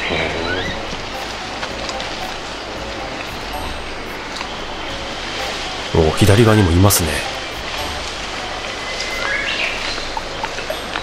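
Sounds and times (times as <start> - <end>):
outdoor background hiss: 0.0 - 11.0
small birds chirping: 0.0 - 11.0.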